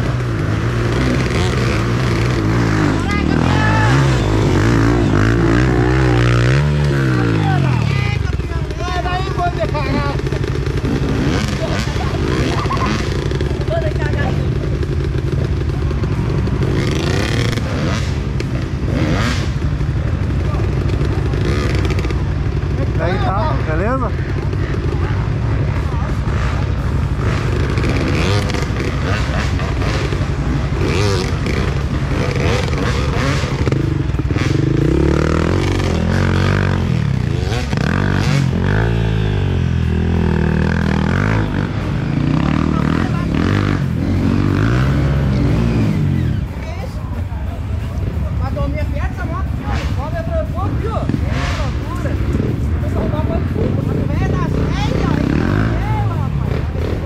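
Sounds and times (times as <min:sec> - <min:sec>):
dirt bike engines revving: 0:00.0 - 0:57.0.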